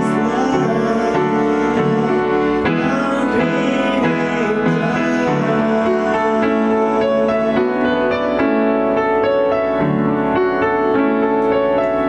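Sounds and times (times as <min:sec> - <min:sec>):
slow piano playing: 0:00.0 - 0:12.0.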